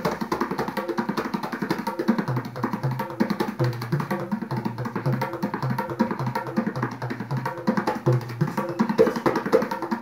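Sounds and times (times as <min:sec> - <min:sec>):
tabla drumming: 0:00.0 - 0:10.0.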